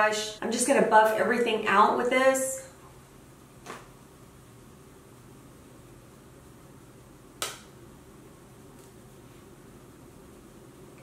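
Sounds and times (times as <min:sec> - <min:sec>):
faint low room hum: 0:00.0 - 0:11.0
sharp click: 0:07.4 - 0:07.7.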